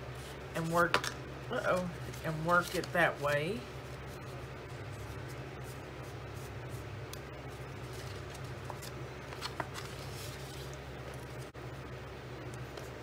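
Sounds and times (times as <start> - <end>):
steady low hum: 0.0 - 13.0
cardstock folding and creasing: 7.8 - 11.4.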